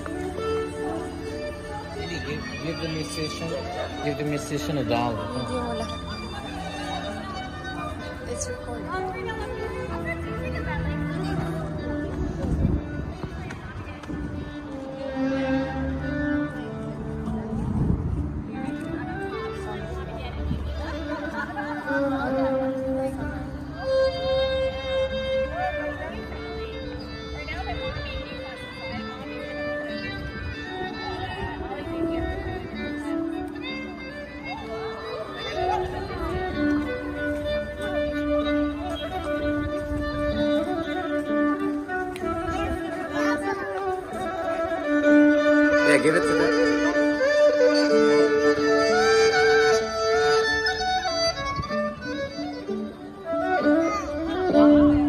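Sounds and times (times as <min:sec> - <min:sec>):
faint voices: 0:00.0 - 0:55.0
solo violin tune: 0:00.0 - 0:55.0.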